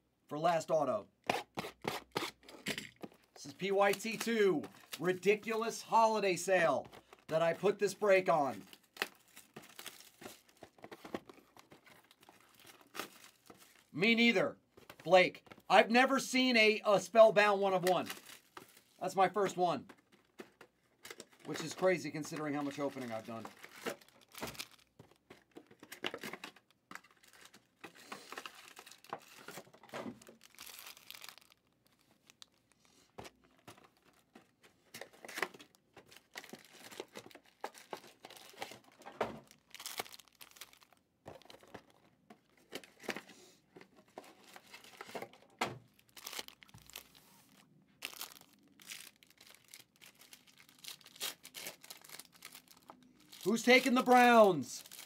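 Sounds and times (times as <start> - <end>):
foil packs crinkling and tearing: 6.5 - 13.9, 17.1 - 34.3, 34.9 - 41.8, 44.2 - 55.0.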